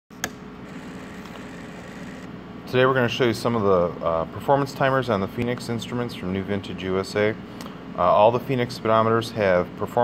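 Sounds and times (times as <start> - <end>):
low mechanical hum: 0.1 - 10.0.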